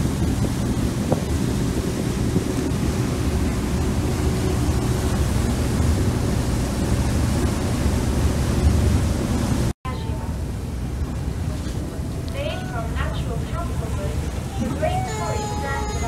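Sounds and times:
low rumble: 0.0 - 15.0
wind buffeting microphone: 0.0 - 15.4
rushing water: 0.0 - 16.0.

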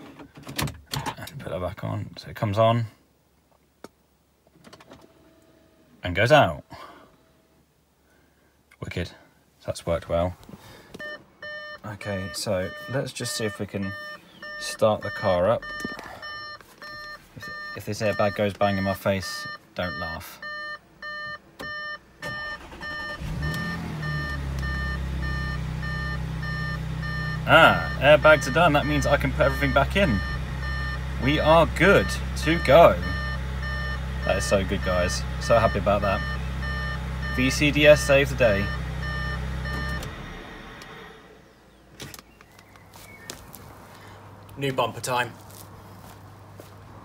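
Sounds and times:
car engine starting and idling: 10.1 - 42.6
warning chime beeping: 11.0 - 40.1.

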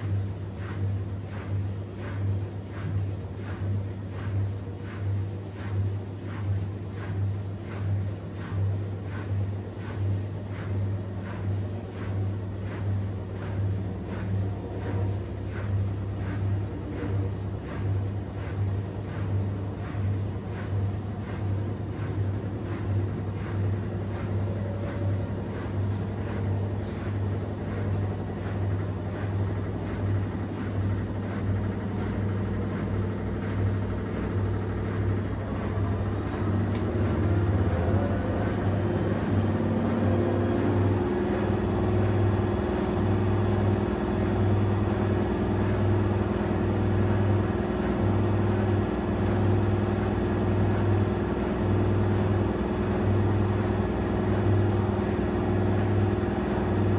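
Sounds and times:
washing machine motor hum: 0.0 - 56.9
water and laundry swishing: 0.0 - 56.9
motor whine rising in pitch: 36.9 - 56.9.

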